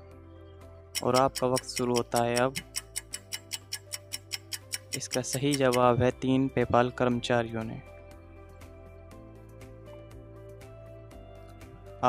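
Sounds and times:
soft background music: 0.0s - 12.0s
countdown timer clock ticking: 1.0s - 6.1s.

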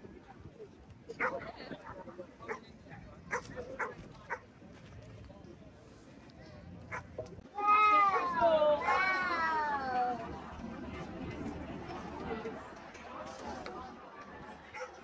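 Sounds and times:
faint outdoor chatter: 0.0s - 15.0s.

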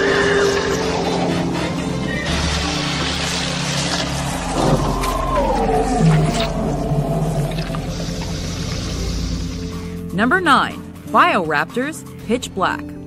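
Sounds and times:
low droning score tones: 0.0s - 10.1s
long falling wail: 3.8s - 8.8s.

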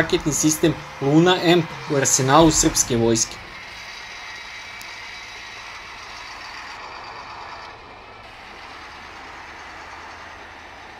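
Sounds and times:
heavy truck engine running: 0.0s - 10.9s.

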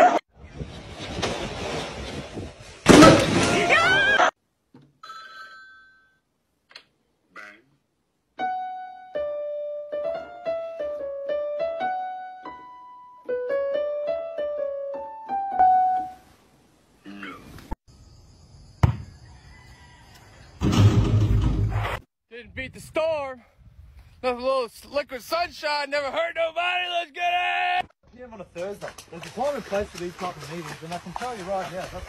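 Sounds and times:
electronic keyboard melody: 8.4s - 16.2s.

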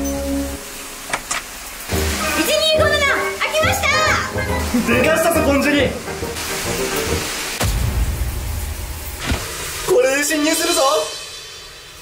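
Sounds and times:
background music: 0.0s - 1.1s, 1.8s - 9.2s.

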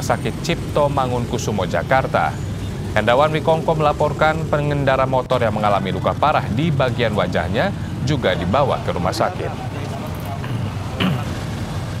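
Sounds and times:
passing cars and motorbikes: 0.0s - 12.0s.

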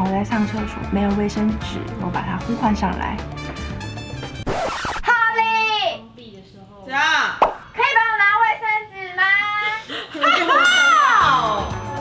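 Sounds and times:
short sharp pop: 7.4s - 7.6s.

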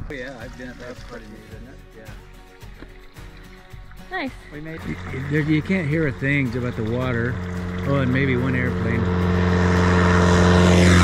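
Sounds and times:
quiet background music: 0.0s - 10.4s.

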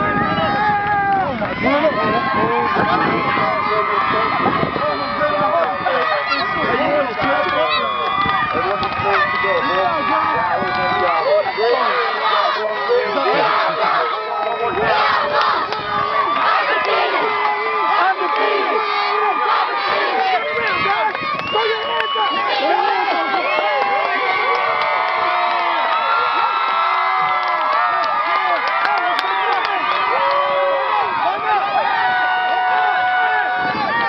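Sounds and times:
children and adults cheering and shouting: 0.0s - 34.0s.

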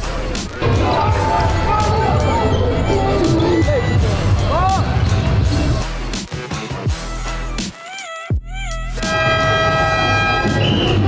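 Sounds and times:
crowd noise: 0.0s - 7.6s, 9.0s - 11.0s
horn long steady note: 9.0s - 11.0s.

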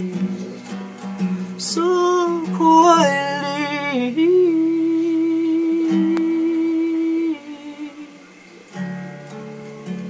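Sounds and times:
acoustic guitar chord: 0.0s - 10.0s.

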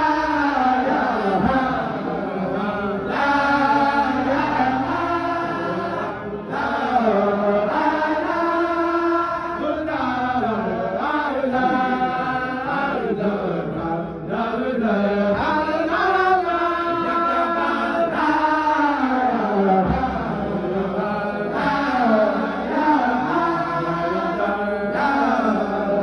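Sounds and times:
men chanting together: 0.0s - 26.0s.

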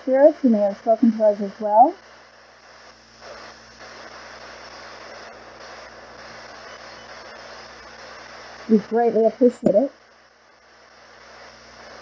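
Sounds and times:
radio static hissing: 0.0s - 12.0s
low hum: 0.7s - 1.6s.

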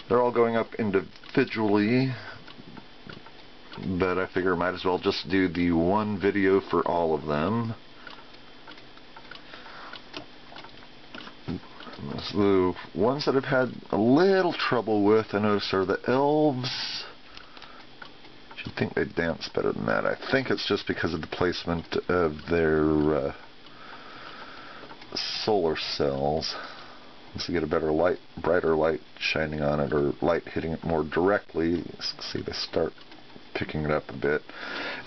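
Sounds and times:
faint room hiss: 0.0s - 35.0s
figurines ticking: 0.0s - 35.0s.

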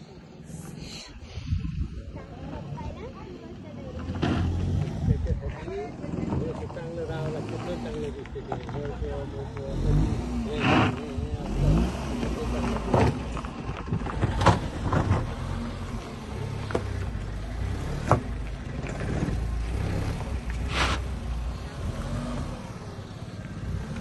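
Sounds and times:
car engine rumbling under load: 0.0s - 24.0s.

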